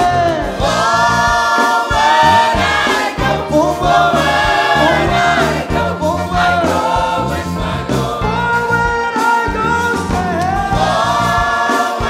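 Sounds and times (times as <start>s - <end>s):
gospel choir singing: 0.0s - 12.0s
live band playing: 0.0s - 12.0s.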